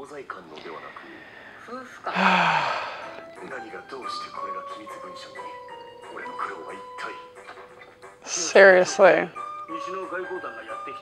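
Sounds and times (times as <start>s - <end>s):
quiet music: 0.0s - 11.0s
woman sighing: 2.0s - 3.2s.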